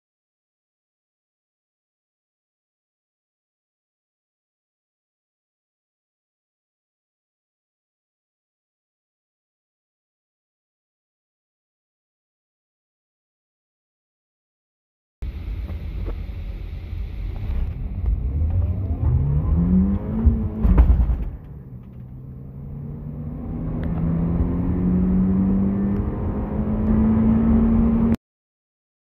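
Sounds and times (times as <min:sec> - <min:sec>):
car engine accelerating: 0:15.2 - 0:28.2.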